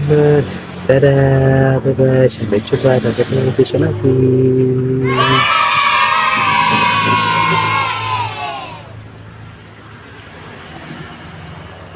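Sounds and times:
children cheering: 5.0 - 9.0.

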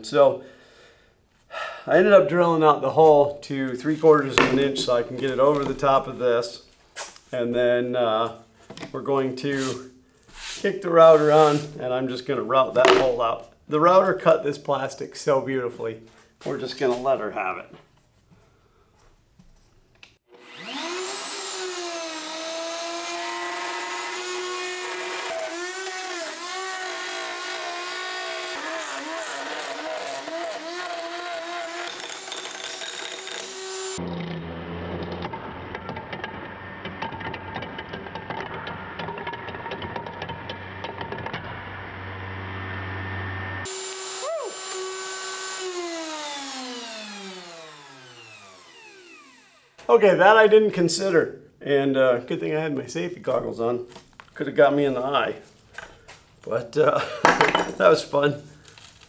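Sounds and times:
electric router cutting plastic: 20.3 - 49.9.

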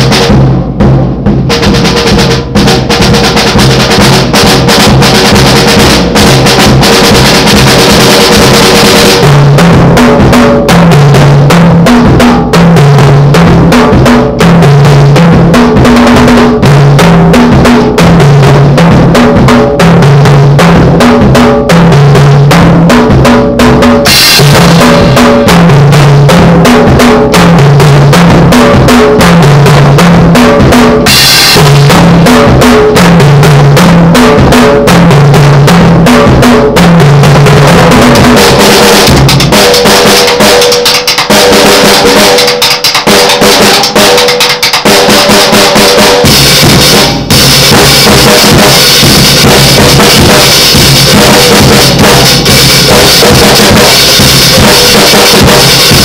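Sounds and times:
drum kit solo: 0.0 - 56.0
cymbal crashes: 24.0 - 27.0, 37.9 - 56.0.

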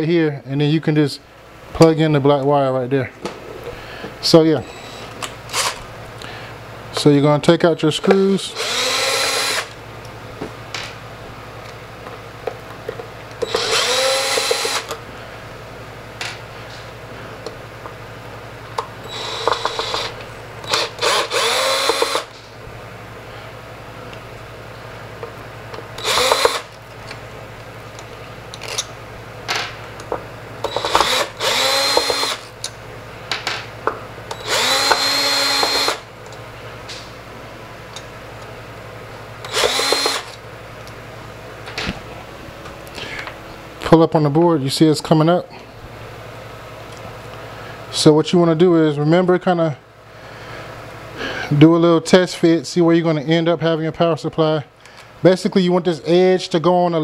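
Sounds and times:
cordless drill whining: 8.5 - 9.8, 13.4 - 15.0, 19.0 - 22.3, 26.0 - 26.8, 30.6 - 32.5, 34.3 - 36.0, 39.4 - 40.4.

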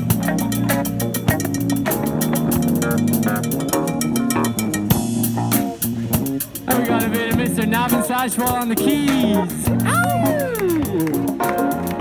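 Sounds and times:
electric bass line: 0.0 - 12.0
fast ticking percussion: 0.0 - 12.0
jam band playing: 0.0 - 12.0.

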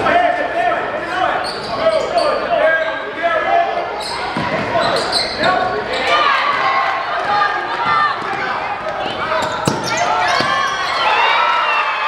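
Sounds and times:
voices: 0.0 - 11.5
sneakers squeaking: 1.3 - 3.2, 3.8 - 11.5
basketball bouncing: 6.5 - 10.9.

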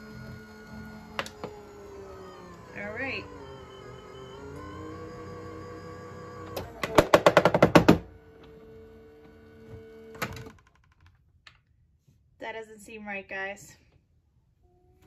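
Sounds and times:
machine motor whine: 0.0 - 10.5
knock: 6.9 - 8.0.

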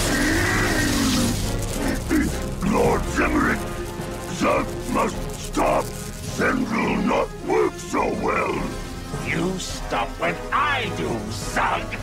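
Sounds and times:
voice making strained sounds: 0.0 - 7.5
background music: 0.0 - 12.0.

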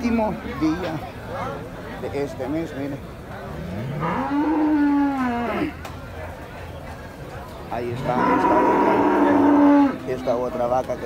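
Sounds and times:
cow mooing: 3.6 - 5.8, 7.9 - 10.1.

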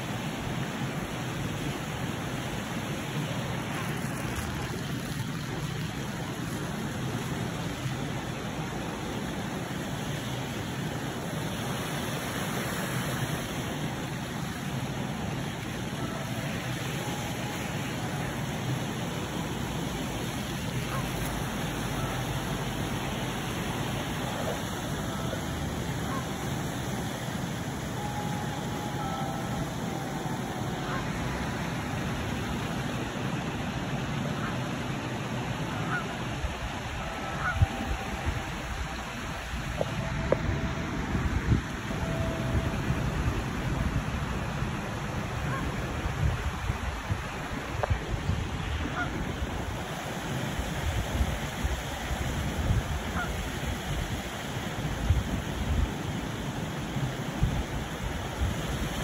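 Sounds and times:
rushing outdoor background noise: 0.0 - 59.0.

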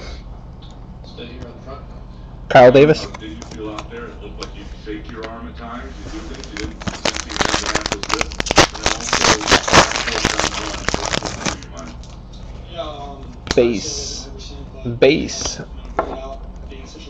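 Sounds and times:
card pack wrapper tearing and crinkling: 6.2 - 12.2.

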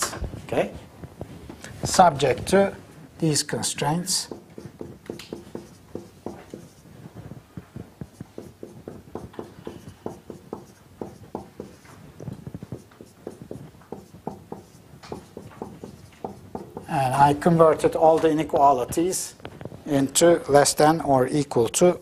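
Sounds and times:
chalk tapping and writing on board: 4.1 - 17.1.

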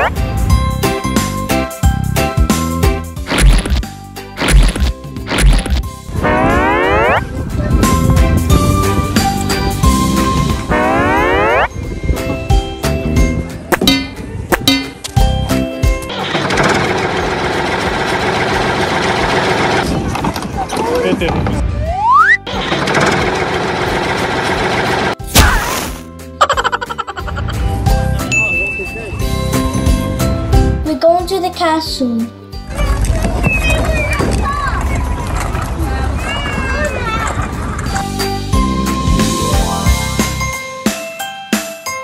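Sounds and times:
children's voices and chatter: 31.2 - 38.2.

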